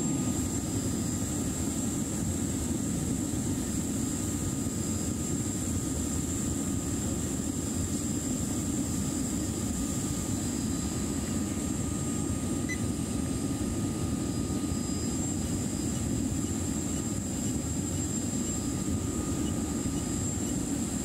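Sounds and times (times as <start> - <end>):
faint whine tones: 9.9 - 21.0.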